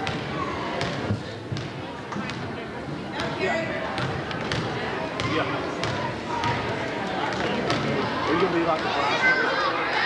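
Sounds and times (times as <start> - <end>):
spectators talking and calling: 0.0 - 10.0
basketball bouncing on gym floor: 3.2 - 6.7.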